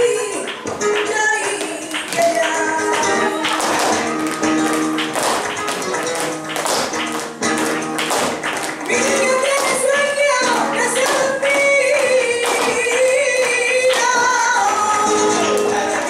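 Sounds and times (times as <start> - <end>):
dancers' shoes tapping on stage: 0.0 - 16.0
flamenco guitar music: 0.0 - 16.0.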